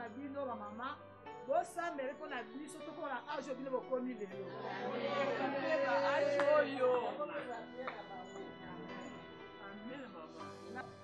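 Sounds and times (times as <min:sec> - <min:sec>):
women singing together: 0:04.6 - 0:07.1.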